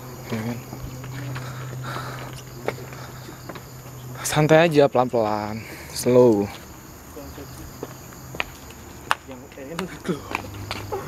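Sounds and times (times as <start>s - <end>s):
low hum: 0.0s - 6.0s
footsteps and rustles on path: 0.0s - 11.0s
night insects chirring: 0.0s - 11.0s.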